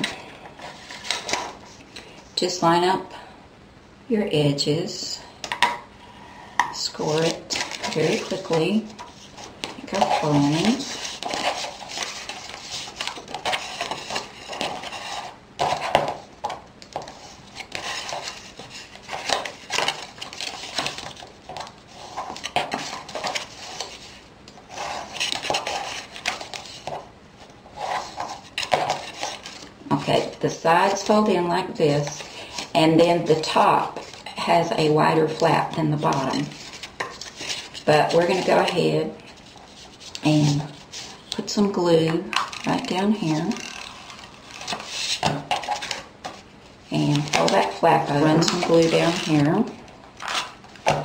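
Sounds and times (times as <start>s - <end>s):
paper scraping and rustling: 7.0s - 27.1s, 27.7s - 31.2s, 36.0s - 41.4s, 42.4s - 51.0s.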